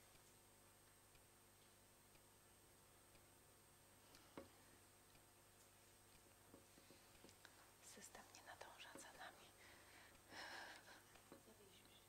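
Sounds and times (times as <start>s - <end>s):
faint whispering: 7.8s - 9.6s, 11.6s - 12.0s.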